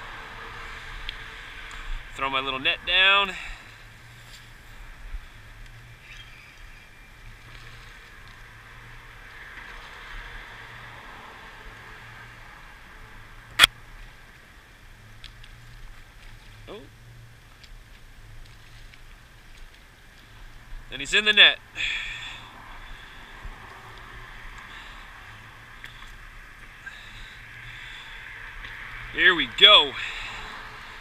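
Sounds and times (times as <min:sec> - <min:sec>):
distant city and harbour hum: 0:00.0 - 0:31.0.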